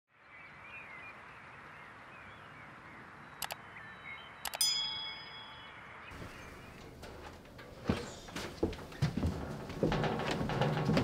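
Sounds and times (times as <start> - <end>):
birds chirping: 0.1 - 9.1
short clicks: 3.4 - 3.6, 4.4 - 4.6
metallic ding ringing: 4.5 - 6.0.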